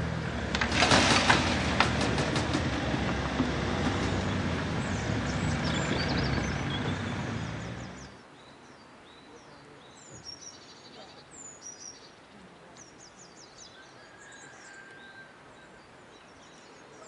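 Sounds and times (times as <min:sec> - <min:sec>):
tyres clacking over rails: 0:00.0 - 0:08.1
cars driving past: 0:00.0 - 0:08.2.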